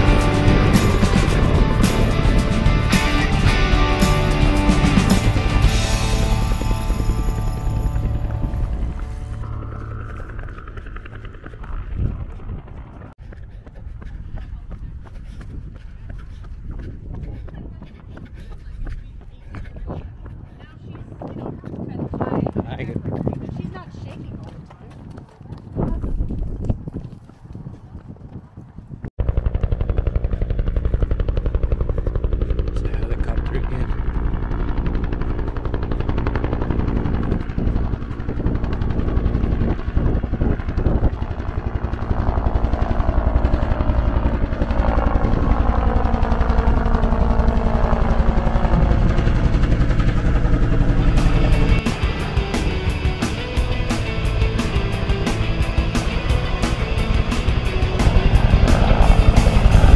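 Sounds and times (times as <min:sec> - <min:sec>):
helicopter rotor chop: 0:00.0 - 0:26.7, 0:29.2 - 0:59.9.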